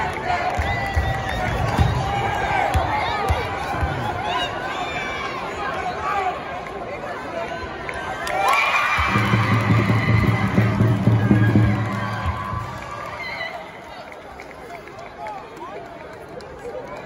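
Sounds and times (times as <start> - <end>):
crowd cheering and shouting: 0.0 - 15.8
crowd chatter: 0.0 - 17.0.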